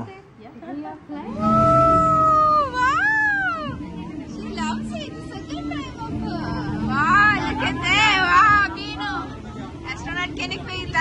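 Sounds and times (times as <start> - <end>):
steady low hum: 1.0 - 11.0.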